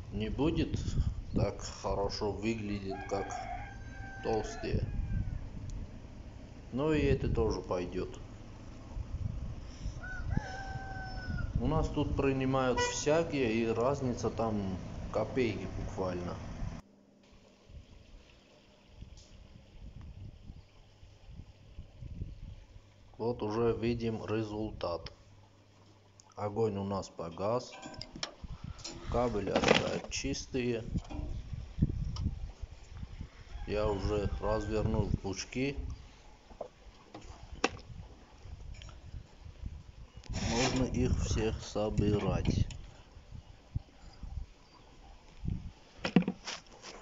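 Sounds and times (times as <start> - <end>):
wind on microphone: 0.0 - 2.1, 3.6 - 6.2, 8.2 - 12.4, 19.0 - 22.8, 28.4 - 29.4, 30.8 - 36.2, 37.2 - 46.0
man speaking: 1.4 - 3.3, 6.7 - 8.2, 11.6 - 16.4, 26.4 - 27.8, 29.1 - 31.0, 33.7 - 35.8, 40.5 - 42.6
copper wire scraping and rustling: 27.6 - 30.3, 40.2 - 41.4.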